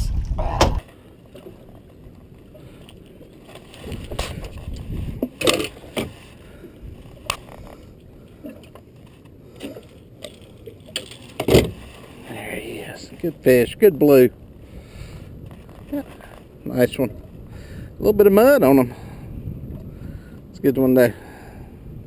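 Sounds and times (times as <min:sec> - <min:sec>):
wind on microphone: 0:00.0 - 0:00.8, 0:03.8 - 0:05.4, 0:14.6 - 0:22.0
knocks and thumps of fish handling: 0:11.0 - 0:12.0.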